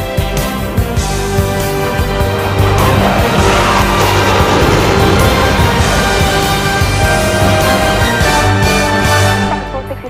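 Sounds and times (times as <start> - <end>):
backing music: 0.0 - 10.0
fighter jet flying past: 0.6 - 9.2.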